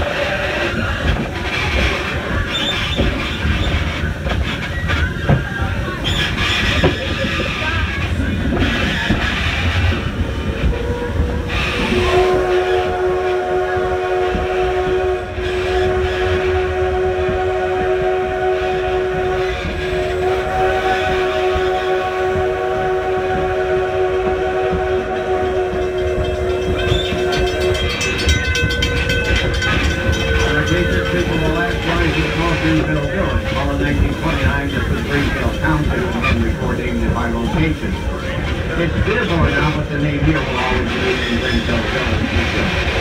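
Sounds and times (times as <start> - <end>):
train wheels clattering on rails: 0.0 - 43.0
steam locomotive chime whistle: 10.8 - 36.8.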